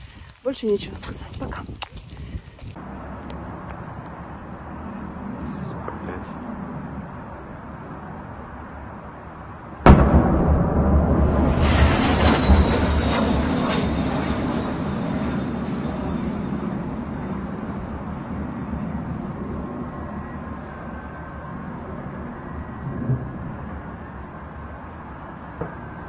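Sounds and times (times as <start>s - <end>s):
aircraft engine rumble: 0.0s - 8.6s, 11.3s - 24.6s
distant explosion thump: 9.8s - 16.3s, 22.8s - 23.9s, 25.6s - 25.9s.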